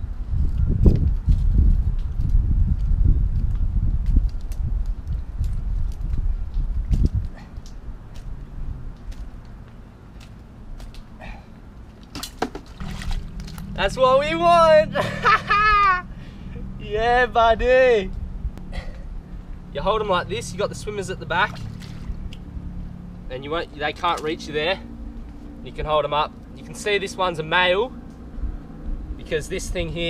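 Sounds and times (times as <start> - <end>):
wind buffeting microphone: 0.0 - 9.4, 12.7 - 22.6, 27.5 - 30.0.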